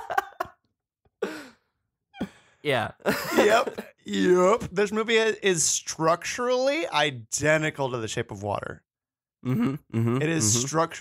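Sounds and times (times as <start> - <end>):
laughter: 0.0 - 0.6, 3.0 - 3.9.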